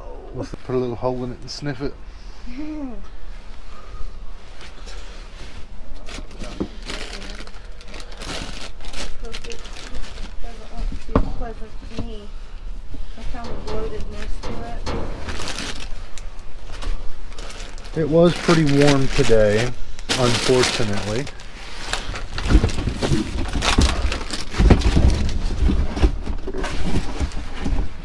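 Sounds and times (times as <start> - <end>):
plastic packaging crinkling: 6.0 - 10.7, 14.2 - 25.9.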